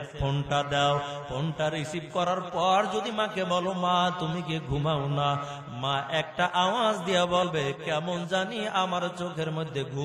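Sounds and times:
man chanting through microphone: 0.0 - 10.0.

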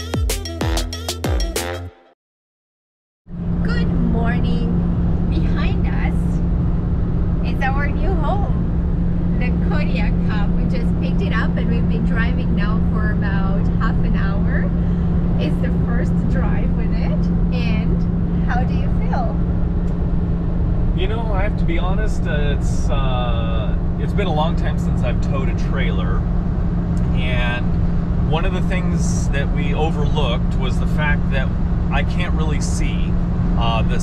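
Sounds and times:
road noise inside cab: 3.3 - 34.0
truck engine drone: 3.3 - 34.0.

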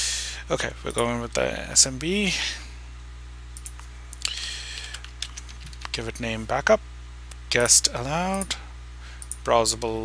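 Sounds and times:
steady low hum: 0.0 - 10.0
keyboard typing clicks: 3.6 - 3.8, 4.8 - 6.0, 9.2 - 9.4.

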